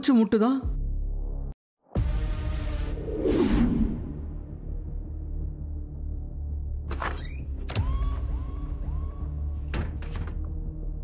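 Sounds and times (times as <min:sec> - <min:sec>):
whoosh effect: 0:02.9 - 0:04.3.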